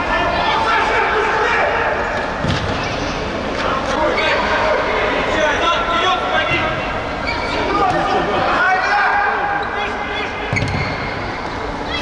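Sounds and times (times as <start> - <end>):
ball kicked on indoor floor: 10.5 - 10.9.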